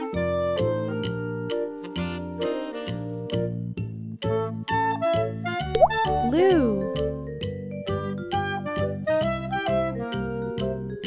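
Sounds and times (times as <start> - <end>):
bouncy children's music: 0.0 - 11.0
rising plop sound effect: 5.8 - 6.3.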